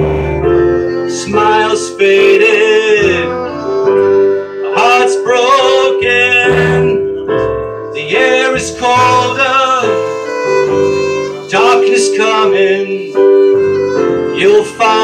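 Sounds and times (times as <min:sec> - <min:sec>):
plucked upright bass: 0:00.0 - 0:04.3, 0:05.7 - 0:11.6
bowed violin: 0:00.0 - 0:15.0
keyboard chords: 0:00.0 - 0:15.0.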